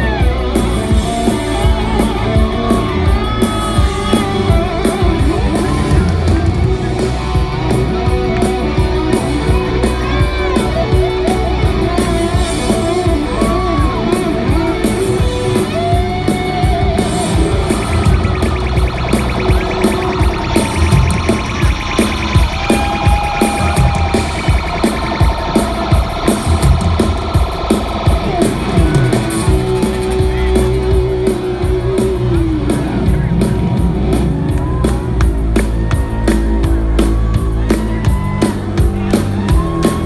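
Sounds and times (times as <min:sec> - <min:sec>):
electric guitar solo: 0:00.0 - 0:25.9
rock band playing: 0:00.0 - 0:40.0.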